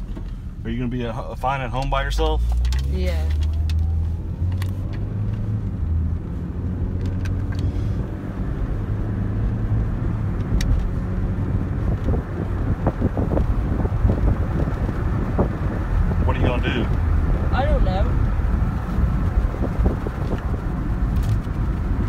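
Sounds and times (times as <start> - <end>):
car engine and road rumble: 0.0 - 22.0.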